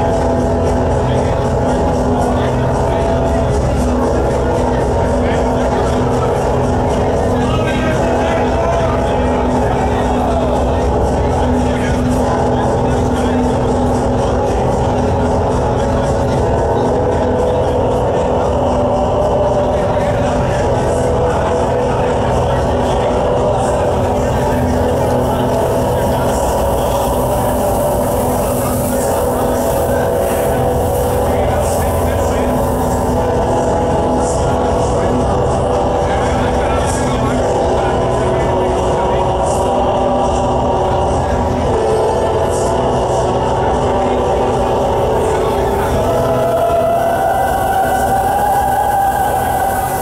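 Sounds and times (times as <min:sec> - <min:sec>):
distorted guitars: 0:00.0 - 0:50.0.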